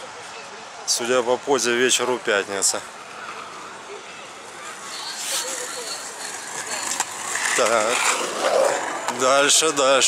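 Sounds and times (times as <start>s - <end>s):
faint distant voices: 0.0s - 10.0s
skateboard wheels rolling on asphalt: 0.8s - 10.0s.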